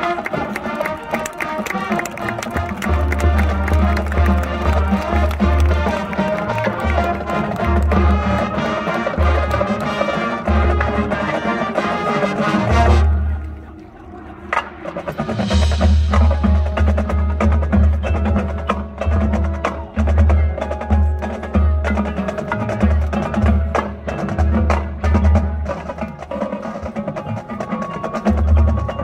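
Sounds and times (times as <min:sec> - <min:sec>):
marching band playing: 0:00.0 - 0:29.0.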